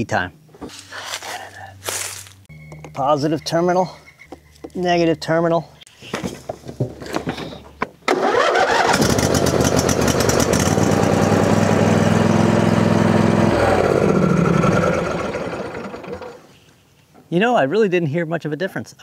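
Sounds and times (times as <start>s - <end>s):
mower engine running: 8.1s - 16.5s
starter cranking engine: 8.1s - 16.5s.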